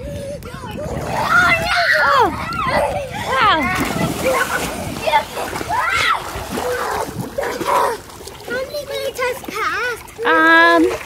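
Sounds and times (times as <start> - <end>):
water splashing in a pool: 0.2 - 11.0.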